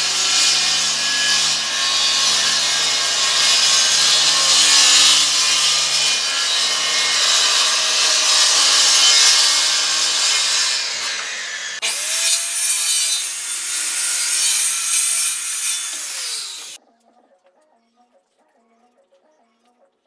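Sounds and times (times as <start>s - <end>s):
circular saw cutting wood: 0.0s - 16.8s.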